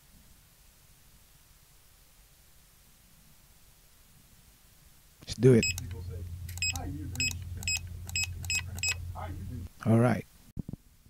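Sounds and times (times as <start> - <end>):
barcode scanner beeping: 5.6 - 9.2.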